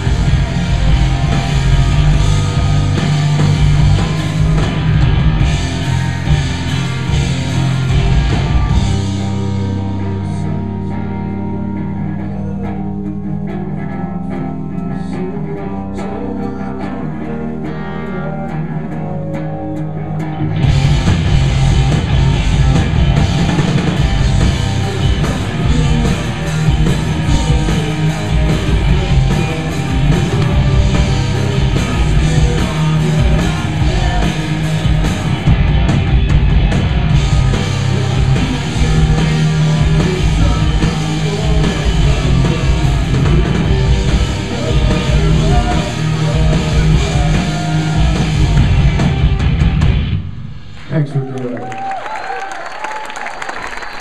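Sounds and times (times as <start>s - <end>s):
electric guitar playing alone: 0.0s - 50.7s
live rock band playing: 0.0s - 50.9s.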